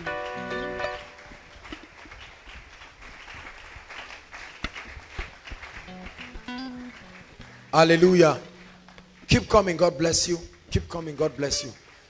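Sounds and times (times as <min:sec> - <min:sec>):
sharp claps: 0:00.2 - 0:12.0
soft background music: 0:07.7 - 0:10.3.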